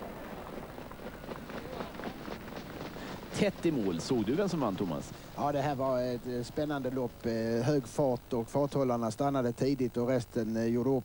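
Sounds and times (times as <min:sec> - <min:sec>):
hoofbeats on dirt: 0:00.0 - 0:08.1
background voices: 0:00.0 - 0:11.0.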